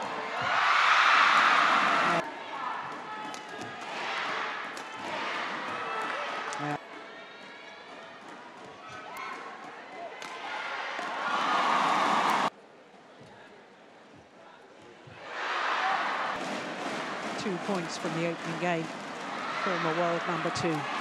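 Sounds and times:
arena crowd cheering: 0.0s - 12.5s, 15.2s - 21.0s.

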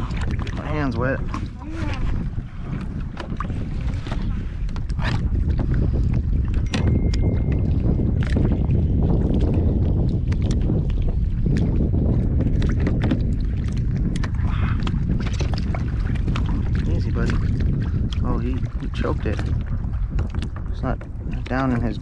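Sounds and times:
clicks and knocks against kayak: 0.0s - 22.0s
wind buffeting microphone: 0.0s - 22.0s.

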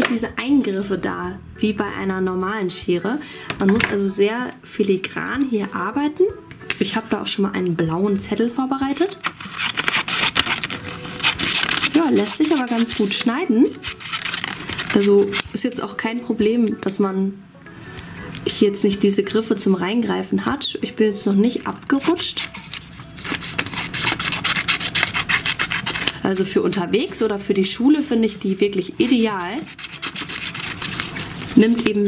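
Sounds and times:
scissors snipping paper: 9.2s - 15.6s, 21.9s - 26.8s, 29.0s - 32.0s.

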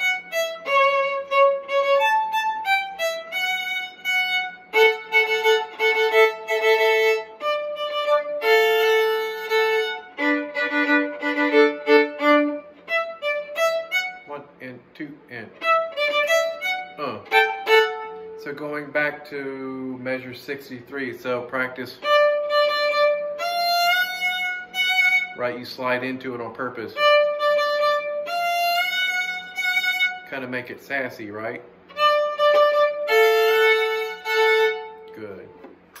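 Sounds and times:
solo fiddle bowed: 0.0s - 14.7s, 15.3s - 36.0s.

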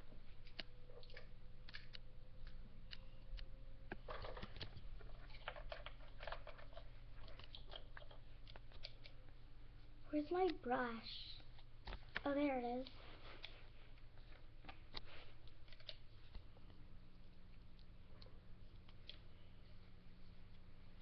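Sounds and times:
steady low hum: 0.0s - 21.0s
plastic toys clicking and tapping: 3.4s - 9.2s.

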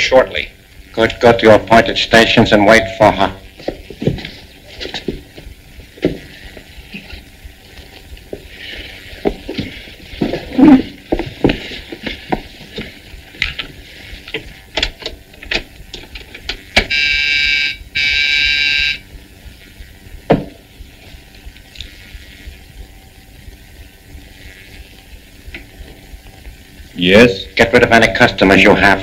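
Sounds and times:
electric buzzer: 13.2s - 27.0s.

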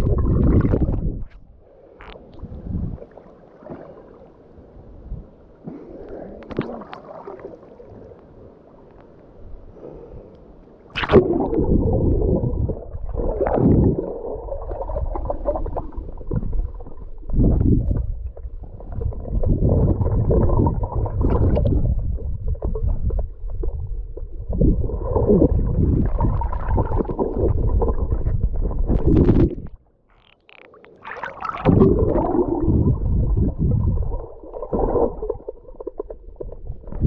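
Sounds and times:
muffled underwater water rushing: 0.0s - 10.1s, 10.8s - 37.0s.

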